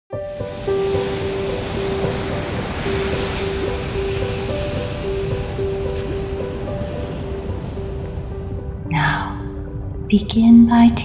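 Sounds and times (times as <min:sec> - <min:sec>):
ocean water washing: 0:00.1 - 0:09.8
slow ambient music: 0:00.1 - 0:11.0.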